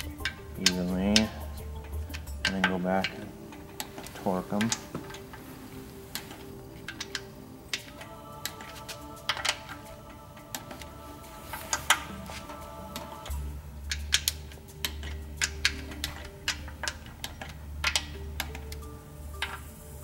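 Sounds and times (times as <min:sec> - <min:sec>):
torque wrench ratcheting: 0:00.0 - 0:05.3, 0:06.1 - 0:19.8
background music: 0:00.0 - 0:20.0.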